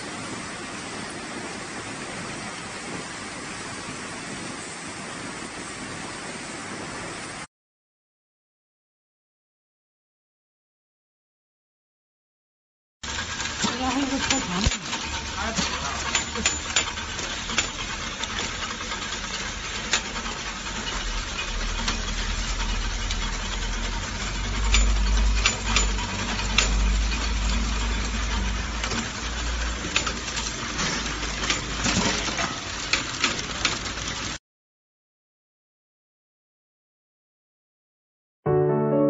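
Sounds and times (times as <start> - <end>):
low machine rumble: 13.0 - 31.5
sharp machine clicks: 13.1 - 30.5
wooden sticks clattering: 13.2 - 22.6, 24.4 - 34.4.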